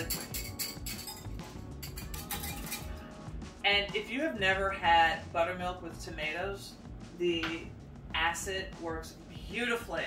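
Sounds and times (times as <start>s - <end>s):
whisk clinking against glass: 0.0s - 3.0s
background music: 0.0s - 10.0s.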